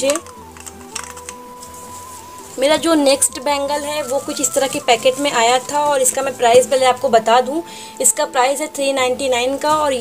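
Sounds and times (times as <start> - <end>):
wooden bangles clicking: 0.0 - 1.9
faint background music: 0.0 - 10.0.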